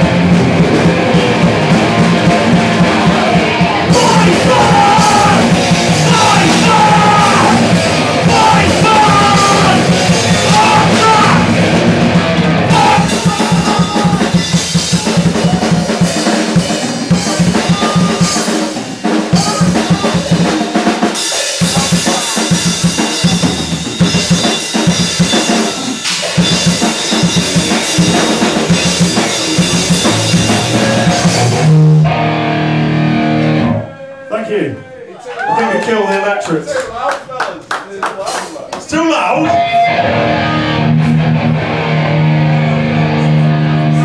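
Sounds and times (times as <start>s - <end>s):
pounding drum kit: 0.0s - 33.8s, 38.1s - 44.0s
distorted electric guitars: 0.0s - 34.0s, 39.4s - 44.0s
metal band playing: 0.0s - 34.6s, 38.2s - 44.0s.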